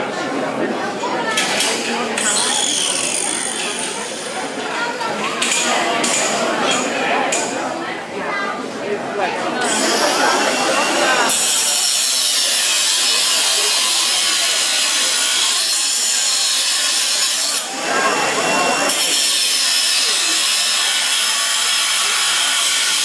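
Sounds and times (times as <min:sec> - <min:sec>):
angle grinder cutting metal: 0:01.4 - 0:04.6, 0:09.6 - 0:23.0.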